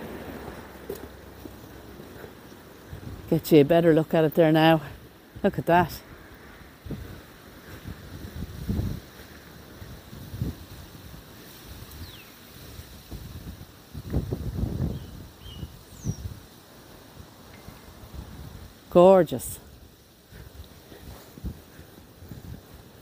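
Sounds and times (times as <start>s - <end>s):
wind gusting over microphone: 0.0s - 3.8s, 4.9s - 23.0s
faint bird chirps: 12.0s - 12.4s, 14.9s - 16.3s.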